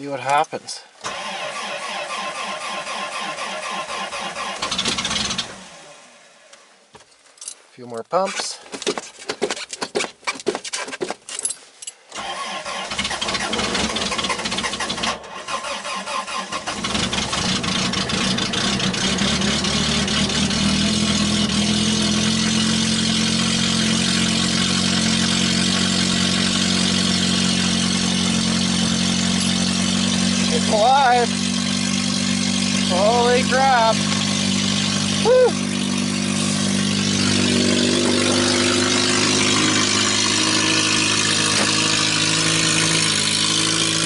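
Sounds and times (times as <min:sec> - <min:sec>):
starter cranking engine: 0:01.0 - 0:05.6, 0:12.2 - 0:21.6, 0:24.1 - 0:44.0
car engine fast idle: 0:12.2 - 0:44.0.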